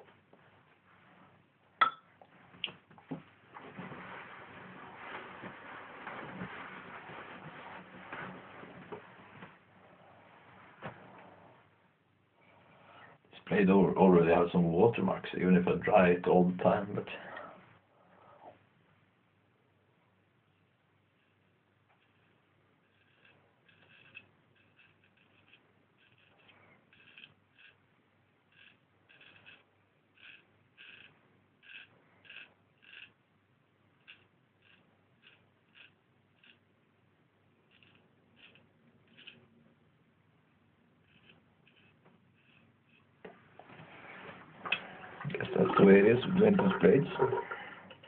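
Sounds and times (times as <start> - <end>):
razor scraping through stubble: 22.0 - 27.8, 30.2 - 33.1, 34.0 - 36.6, 37.7 - 39.4, 41.0 - 43.1
running water: 44.5 - 48.0.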